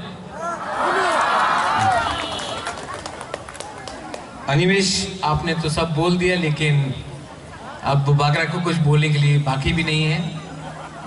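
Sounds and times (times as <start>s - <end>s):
audience shouting and cheering: 0.3s - 3.0s.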